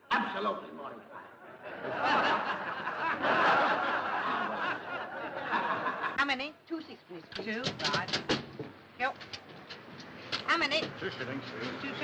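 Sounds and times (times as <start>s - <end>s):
audience laughing: 1.4s - 6.2s.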